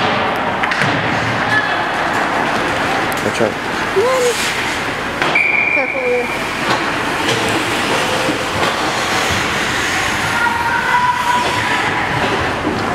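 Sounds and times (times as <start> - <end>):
skates scraping on ice: 6.5 - 12.9.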